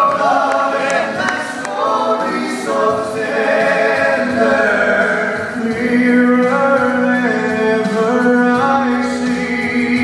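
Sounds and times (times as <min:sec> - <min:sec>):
male trio singing in harmony: 0:00.0 - 0:10.0.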